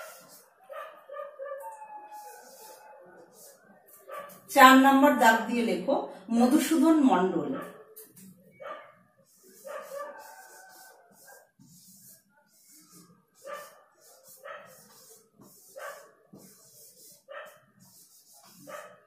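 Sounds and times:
faint dog barks: 0:00.0 - 0:04.5, 0:08.6 - 0:11.5, 0:13.4 - 0:15.1, 0:15.7 - 0:16.4, 0:17.2 - 0:17.7, 0:18.5 - 0:19.0
marker scratching on whiteboard: 0:00.0 - 0:04.5, 0:09.2 - 0:19.0.

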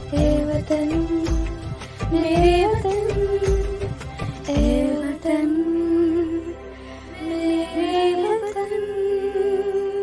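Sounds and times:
faint backing track: 0:00.0 - 0:10.0
girls singing in unison: 0:04.5 - 0:06.5, 0:07.2 - 0:10.0.

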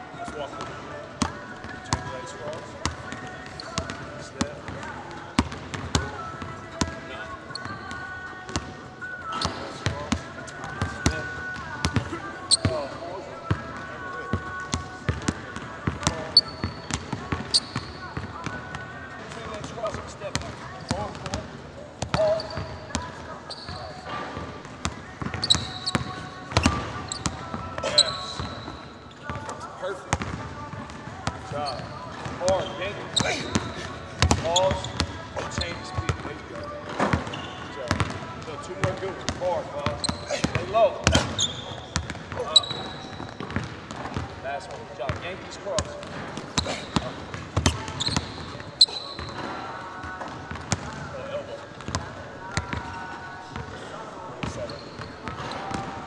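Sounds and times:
sneakers squeaking on floor: 0:00.2 - 0:56.0
basketball bouncing on hardwood: 0:43.1 - 0:44.2.

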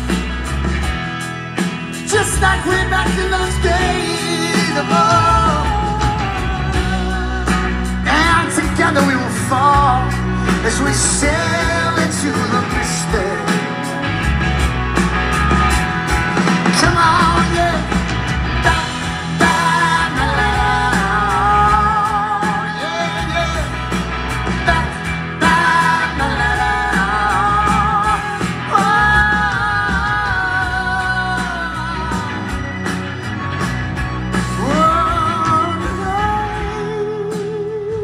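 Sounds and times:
bass guitar: 0:00.0 - 0:38.0
drums: 0:00.0 - 0:38.0
electric guitar: 0:00.0 - 0:38.0.

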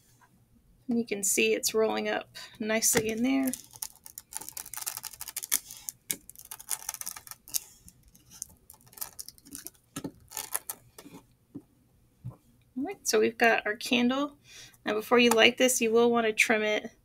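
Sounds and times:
wax crackling and rustling: 0:02.8 - 0:11.3.

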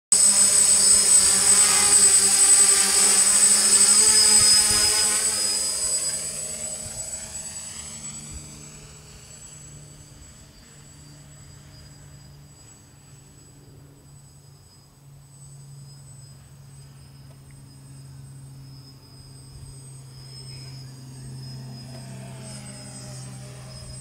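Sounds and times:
drone propellers buzzing: 0:00.1 - 0:24.0.

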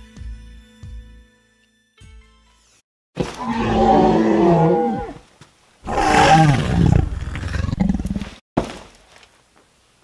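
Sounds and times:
dinosaur roar: 0:03.3 - 0:05.2, 0:05.9 - 0:08.3.

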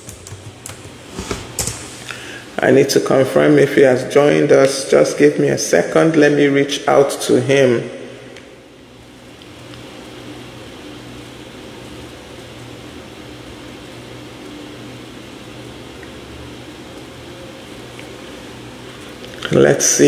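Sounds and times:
mechanical hum with low drone: 0:00.0 - 0:20.0.

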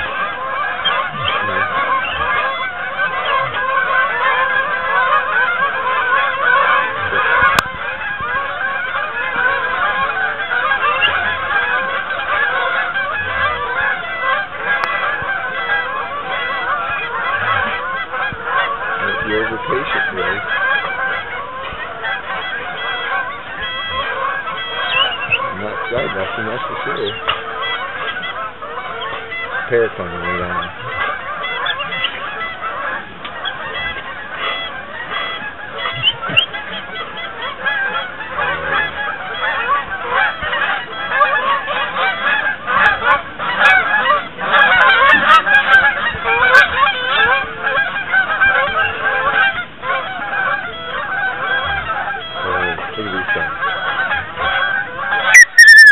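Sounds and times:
geese honking: 0:00.0 - 0:55.9.

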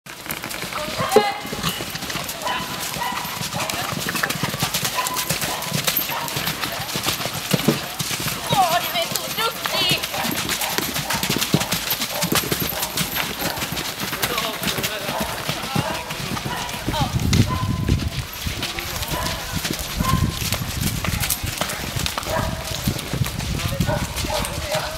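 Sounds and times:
horse hoofbeats on sand: 0:00.1 - 0:24.9
people talking: 0:00.8 - 0:02.9, 0:07.6 - 0:10.4, 0:14.1 - 0:17.2, 0:23.6 - 0:24.9.

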